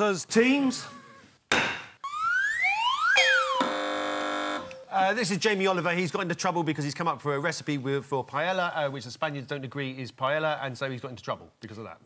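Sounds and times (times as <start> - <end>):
electronic buzzer tone: 3.3 - 4.8.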